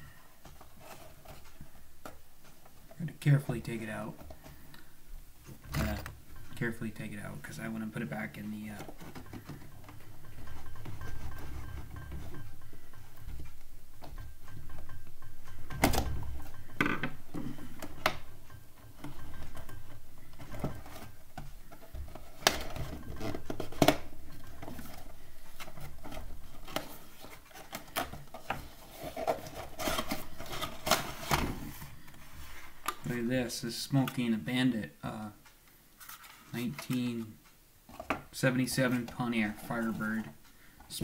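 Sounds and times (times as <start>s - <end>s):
packaging rustling and clicking: 8.0s - 15.0s, 15.7s - 33.2s.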